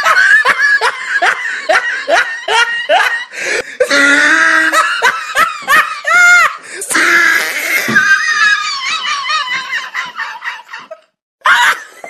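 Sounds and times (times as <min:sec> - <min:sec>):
person laughing hard: 0:00.0 - 0:12.0.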